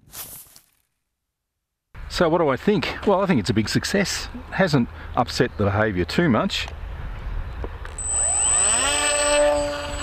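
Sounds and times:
model plane electric motor whine: 7.9 - 10.0
thin high tone: 8.0 - 10.0.

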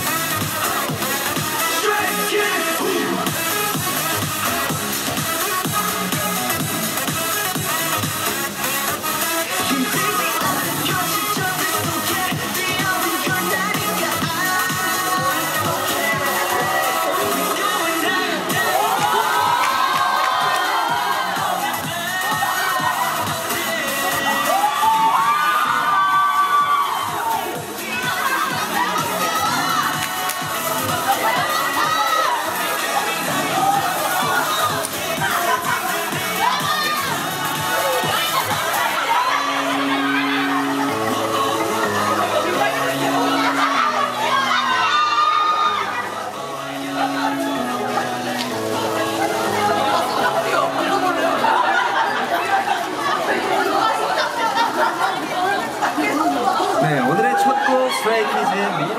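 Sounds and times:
crowd screaming and cheering: 0.0 - 58.9
overlapping chatter of voices: 0.0 - 58.9.

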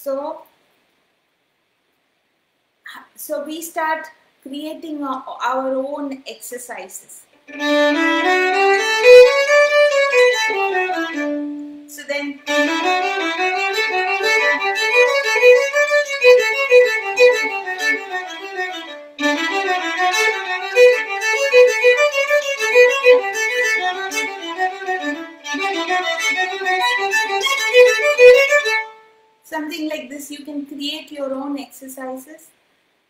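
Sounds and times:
violin playing fast scale runs: 7.5 - 29.0.

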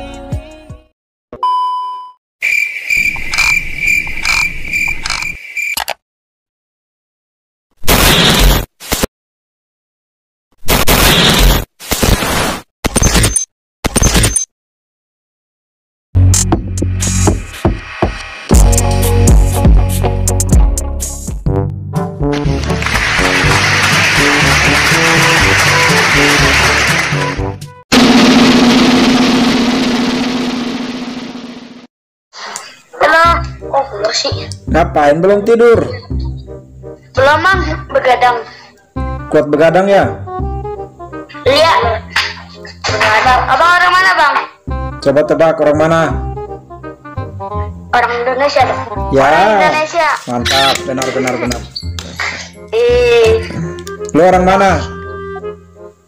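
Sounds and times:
loud cinematic hit: 27.9 - 31.9.

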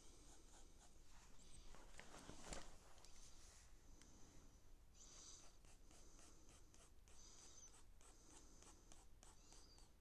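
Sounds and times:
pencil scratching on paper: 0.0 - 1.0, 5.2 - 10.0.

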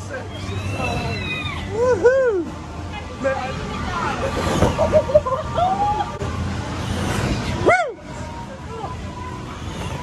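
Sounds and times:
people shouting and chattering: 0.0 - 10.0.

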